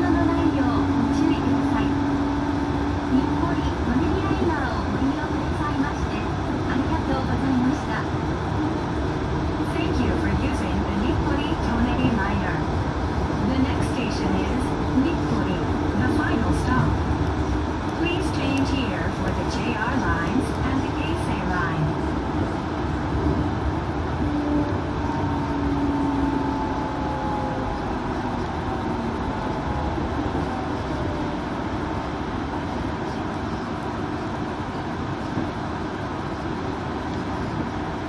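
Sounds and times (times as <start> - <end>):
train tyres rumbling: 0.0 - 38.0.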